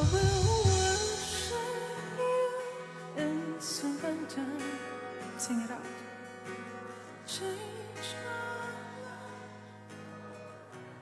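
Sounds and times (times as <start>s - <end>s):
lead vocalist singing: 0.0s - 6.2s, 7.2s - 9.7s.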